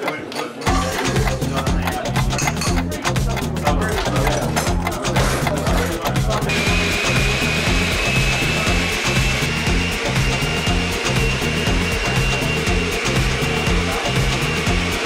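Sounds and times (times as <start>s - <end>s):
background music with steady beat: 0.1s - 15.0s
blender motor whine: 6.4s - 15.0s.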